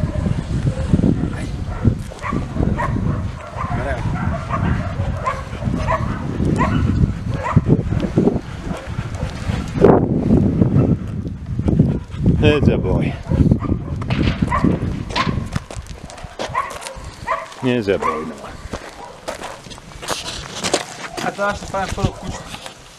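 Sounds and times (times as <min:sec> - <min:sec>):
steady low rumble: 0:00.0 - 0:16.1.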